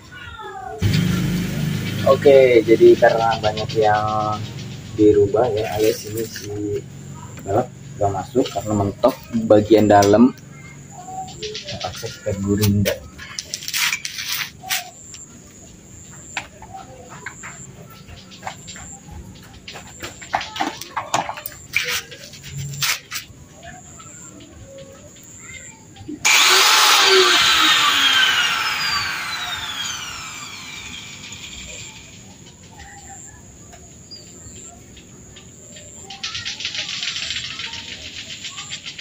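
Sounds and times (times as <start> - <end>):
angle grinder running: 0.8 - 5.0, 26.2 - 32.2.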